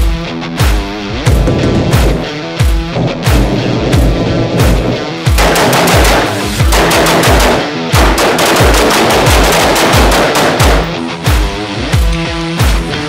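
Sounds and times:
heavy metal music: 0.0 - 13.0
rapid rifle fire: 4.6 - 11.1.

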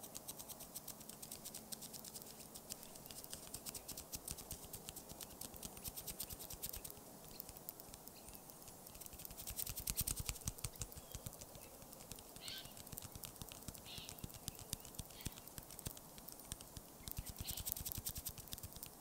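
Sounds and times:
light taps and clicks: 0.0 - 19.0
scratching strokes: 0.0 - 19.0.

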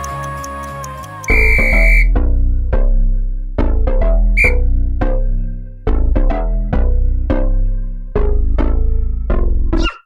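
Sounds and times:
long electronic timer beep: 1.3 - 2.1.

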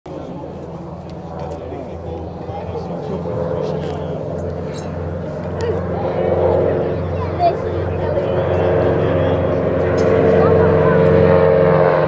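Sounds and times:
radial aircraft engines droning: 0.1 - 12.0.

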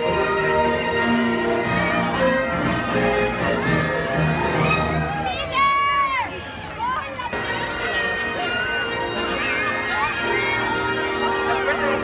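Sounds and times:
parade music from loudspeakers: 0.0 - 5.5, 7.2 - 12.0
crowd chatter: 0.0 - 12.0.

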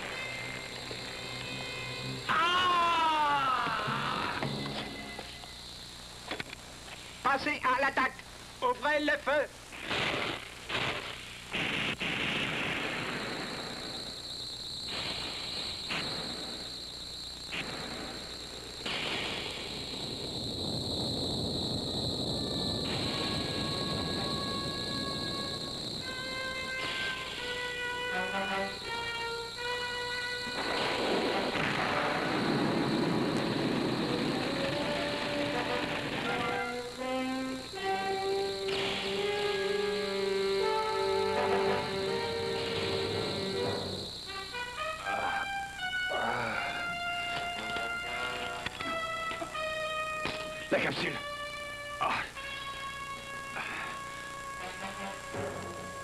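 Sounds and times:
explosion effects: 9.8 - 14.1, 17.5 - 24.9, 30.6 - 36.7, 41.4 - 44.1
rushing noise: 30.5 - 37.8.

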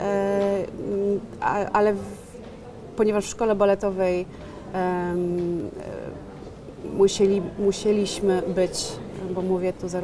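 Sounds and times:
woman speaking: 0.0 - 2.4, 3.0 - 6.2, 6.8 - 10.0.

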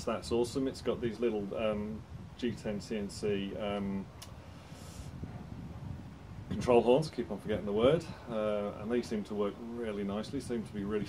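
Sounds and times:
soft hiss: 0.0 - 11.0
small click: 3.8 - 4.4.

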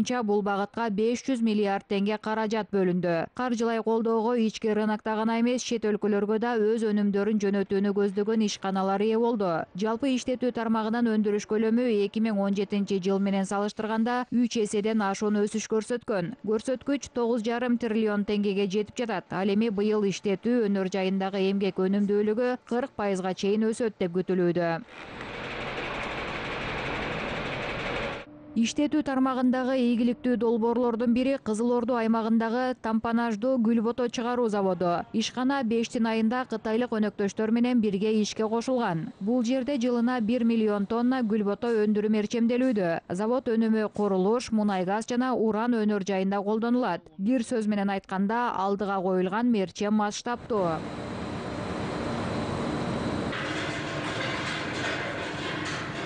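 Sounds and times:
harsh conveyor noise: 24.9 - 28.3, 50.4 - 56.0
industrial machinery din: 24.9 - 28.3, 50.4 - 56.0.

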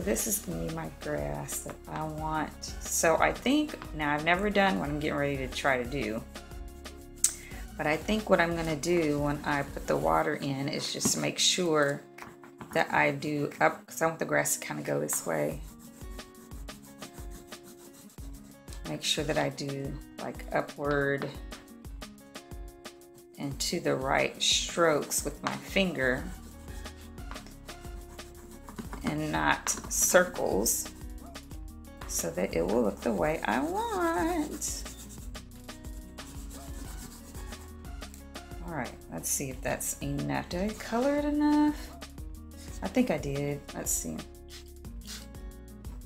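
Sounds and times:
soft background music: 0.0 - 46.0
crayon scratching on paper: 15.0 - 19.4, 25.0 - 31.0, 33.3 - 35.4, 36.0 - 37.8, 44.5 - 45.3.

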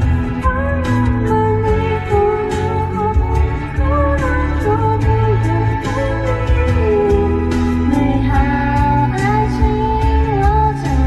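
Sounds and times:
pop backing track: 0.0 - 11.0
woman singing into microphone: 0.0 - 11.0.

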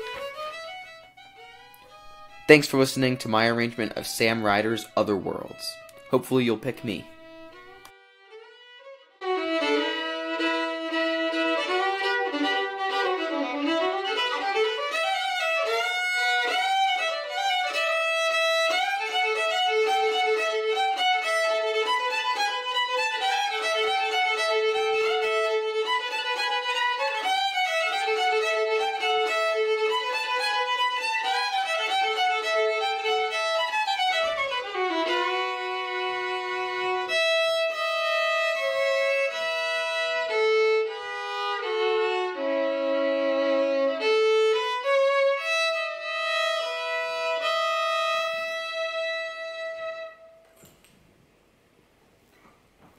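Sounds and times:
solo violin playing: 0.0 - 50.5.

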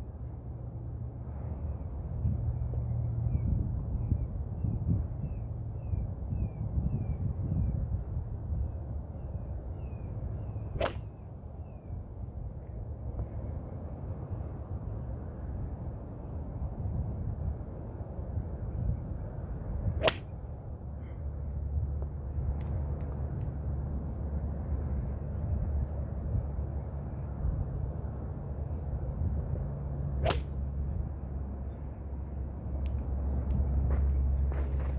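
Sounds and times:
golf club swish: 10.7 - 11.2, 20.0 - 20.3, 30.2 - 30.6
club striking golf ball: 10.8 - 11.2, 20.0 - 20.3, 30.2 - 30.6.

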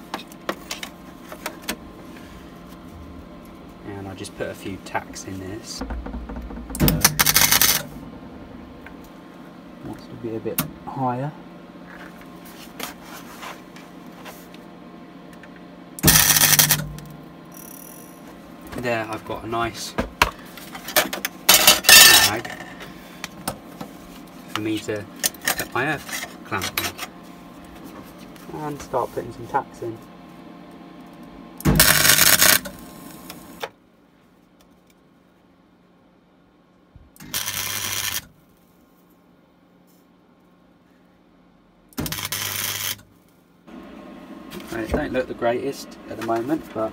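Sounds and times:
crackling welding arc: 7.0 - 7.9, 16.0 - 16.9, 31.7 - 33.4, 37.2 - 38.3, 42.0 - 43.1.

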